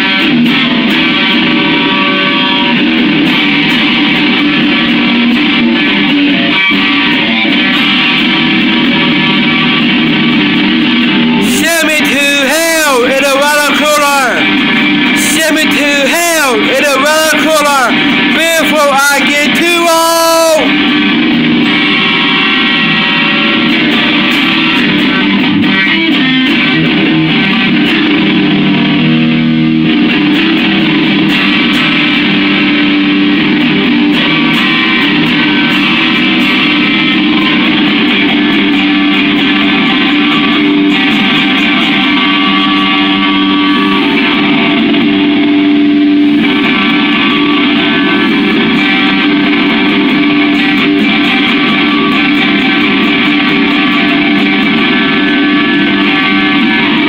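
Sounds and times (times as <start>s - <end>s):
amplified electric guitar: 0.0s - 57.0s.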